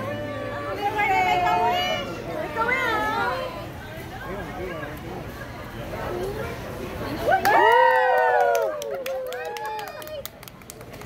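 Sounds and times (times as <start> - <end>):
voices: 0.0 - 11.0
group clapping hands: 7.4 - 11.0.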